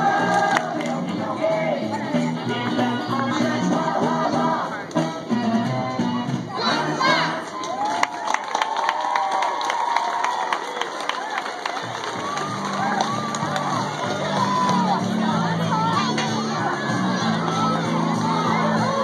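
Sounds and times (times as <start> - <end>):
crowd cheering and clapping: 0.0 - 1.0, 7.1 - 19.0
dance music: 0.0 - 7.8, 11.9 - 19.0
children shouting and whooping: 6.5 - 19.0.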